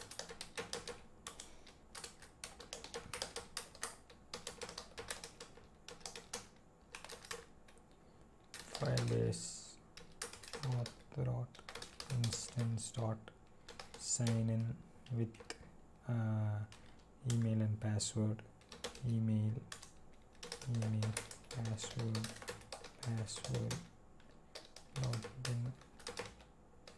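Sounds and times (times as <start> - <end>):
keyboard typing: 0.0 - 7.8, 8.4 - 9.4, 10.0 - 12.9, 13.6 - 15.6, 18.6 - 26.9
person speaking quietly: 25.0 - 25.8.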